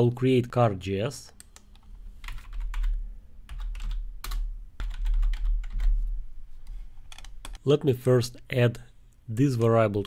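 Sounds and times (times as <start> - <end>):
computer keyboard typing: 1.3 - 6.0, 7.1 - 7.6.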